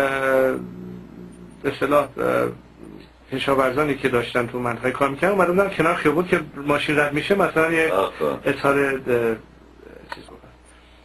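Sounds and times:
man speaking: 0.0 - 10.6
faint low room noise: 0.0 - 11.0.

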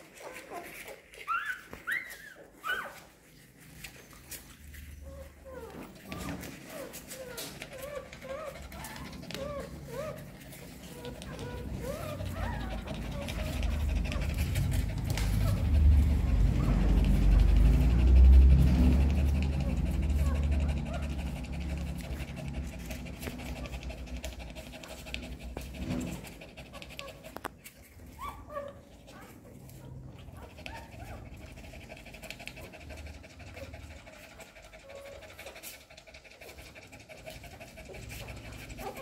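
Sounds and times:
puppies squeaking: 0.0 - 35.7, 37.2 - 39.0
dog panting rapidly: 0.0 - 39.0.

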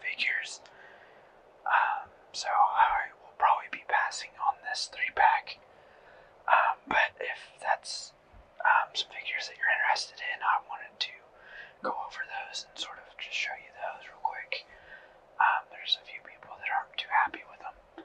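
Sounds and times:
person whispering: 0.0 - 0.7, 1.6 - 5.6, 6.4 - 14.7, 15.4 - 18.0.

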